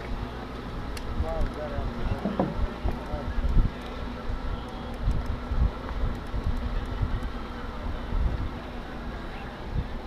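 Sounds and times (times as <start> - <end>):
faint hum: 0.0 - 10.0
wind buffeting microphone: 1.1 - 9.0, 9.6 - 10.0.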